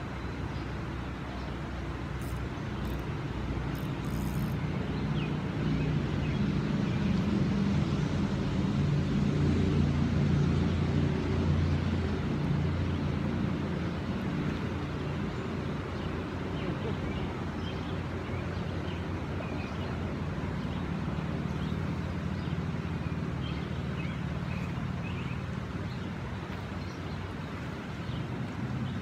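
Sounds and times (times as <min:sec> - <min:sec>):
flowing river water: 0:00.0 - 0:29.0.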